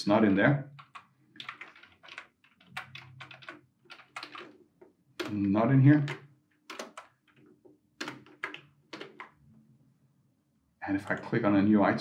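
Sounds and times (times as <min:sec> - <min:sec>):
computer keyboard keys clicking: 0:00.8 - 0:04.6, 0:05.2 - 0:09.4.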